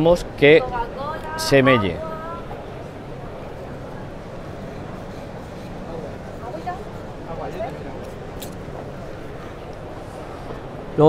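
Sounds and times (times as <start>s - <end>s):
distant voices: 0.0s - 11.0s
exhibition hall hubbub: 0.0s - 11.0s.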